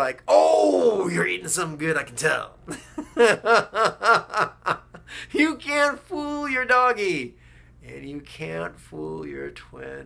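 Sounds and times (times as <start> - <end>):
man laughing heartily: 2.7 - 5.3.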